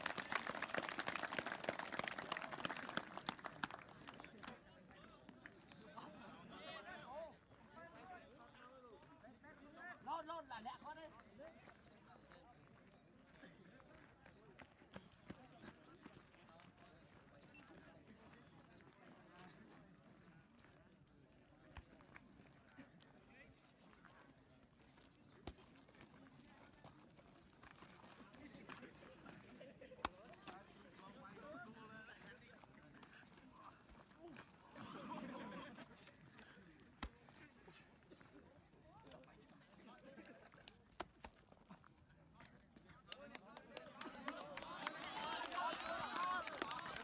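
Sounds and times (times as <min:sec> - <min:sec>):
faint voices of people: 0:00.0 - 0:47.0.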